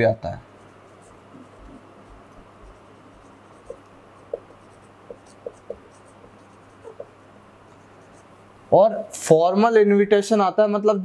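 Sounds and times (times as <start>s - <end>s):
marker writing on whiteboard: 0.4s - 8.4s
marker tip squeaks: 1.3s - 7.2s.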